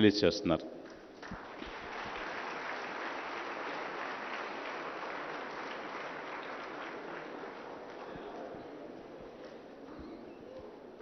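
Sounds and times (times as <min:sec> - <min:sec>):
audience applauding: 0:01.1 - 0:08.6.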